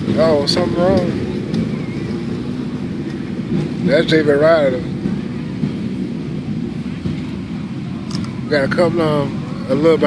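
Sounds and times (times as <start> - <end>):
motorcycle engines idling: 0.0 - 10.0.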